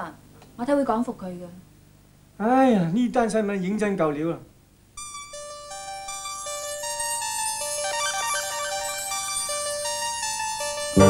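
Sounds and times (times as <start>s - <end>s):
soft synthesizer melody: 5.0s - 11.0s.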